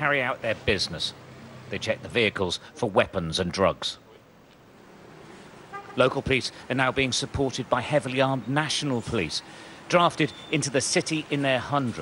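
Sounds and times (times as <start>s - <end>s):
faint street traffic: 0.0s - 12.0s
car horn toot: 5.7s - 6.1s.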